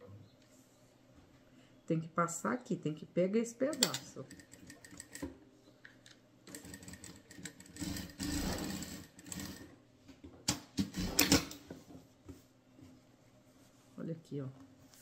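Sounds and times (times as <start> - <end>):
sewing machine stitching: 6.5 - 9.7, 10.8 - 11.6.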